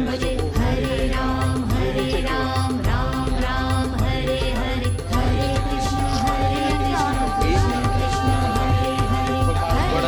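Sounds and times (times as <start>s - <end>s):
chant-like singing: 0.0s - 10.0s
pulsing beat: 0.0s - 10.0s.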